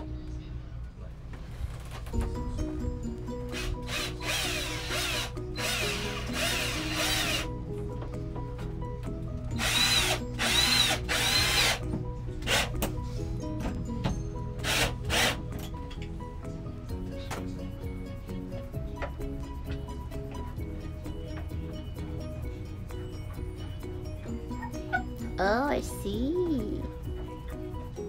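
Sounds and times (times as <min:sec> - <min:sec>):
cordless drill driving screws: 0:03.5 - 0:07.5, 0:09.6 - 0:11.8, 0:14.6 - 0:15.4.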